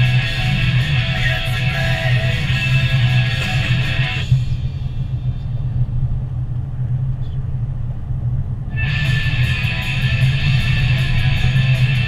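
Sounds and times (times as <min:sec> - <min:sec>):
car driving on paved road: 0:00.0 - 0:12.0.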